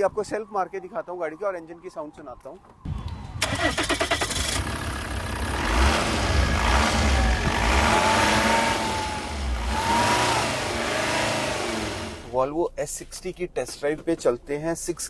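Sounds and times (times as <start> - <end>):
engine whine: 2.9 - 12.3
diesel engine revving: 3.4 - 12.3.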